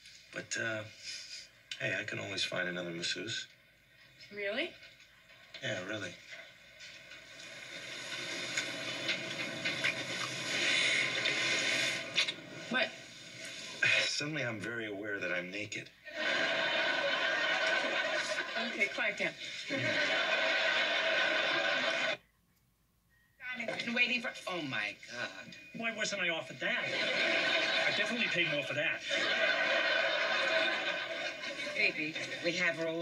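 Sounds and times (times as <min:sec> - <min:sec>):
audience cheering and applauding: 0:19.7 - 0:22.2.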